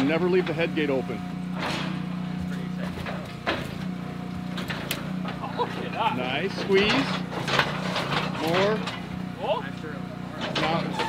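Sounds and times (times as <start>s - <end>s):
people's voices: 5.3s - 7.3s.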